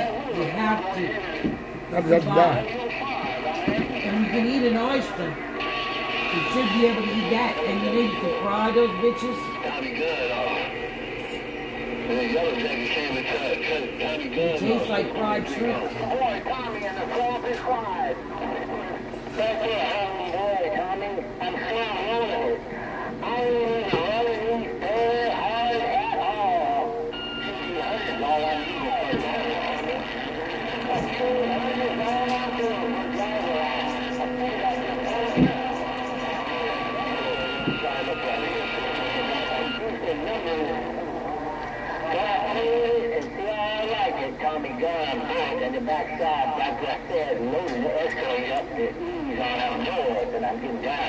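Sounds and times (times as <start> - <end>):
garbled radio voices: 0.0 - 51.0
radio hiss: 0.0 - 51.0.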